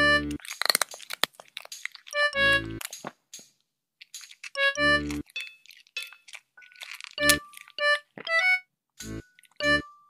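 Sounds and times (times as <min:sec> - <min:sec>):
hamster chewing crunchy vegetable: 0:00.4 - 0:03.0, 0:04.0 - 0:08.4.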